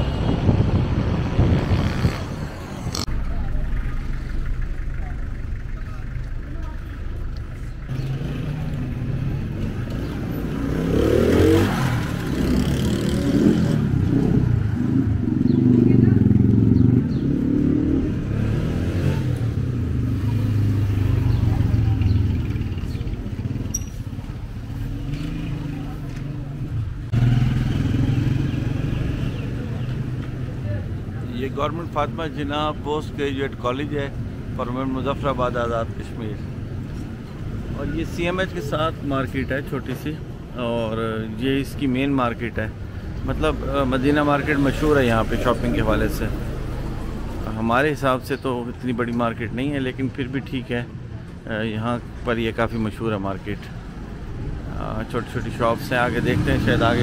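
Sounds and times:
motorcycles passing: 0.0s - 57.0s
street traffic passing: 0.0s - 57.0s
people's voices: 2.9s - 10.2s.

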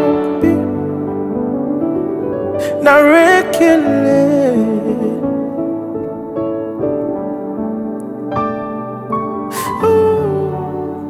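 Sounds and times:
soft keyboard chords: 0.0s - 11.0s
man singing long note: 9.6s - 11.0s.

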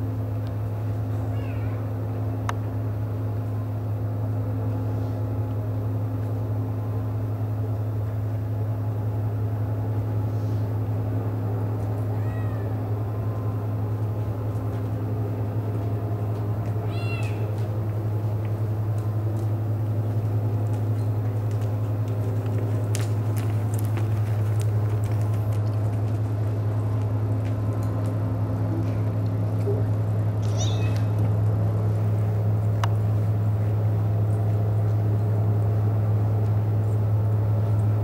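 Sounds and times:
steady low hum: 0.0s - 38.0s
high wavering meow: 1.3s - 1.8s, 12.1s - 12.9s, 16.8s - 17.5s, 30.4s - 31.1s
high falling animal call: 30.4s - 31.1s.

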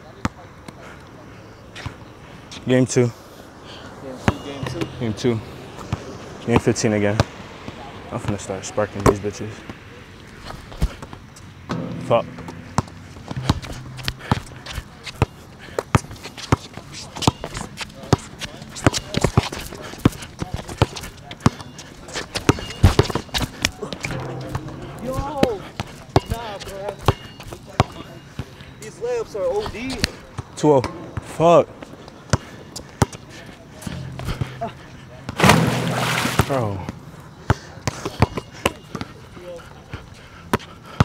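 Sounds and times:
basketball bouncing on hard court: 11.7s - 15.3s.

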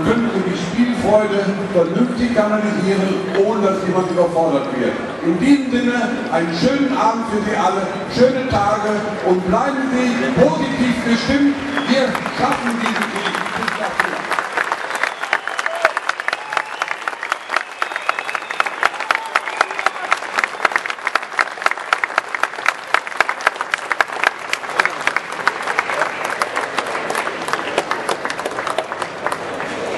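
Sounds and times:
audience clapping: 10.9s - 29.9s.

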